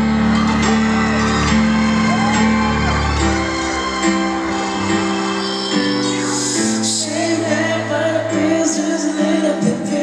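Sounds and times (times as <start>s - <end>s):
crowd whooping and screaming: 0.0s - 7.1s
piano playing slow chords: 0.0s - 10.0s.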